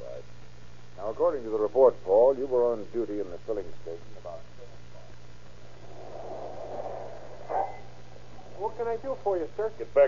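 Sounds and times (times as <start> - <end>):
steady recording hum: 0.0 - 10.0.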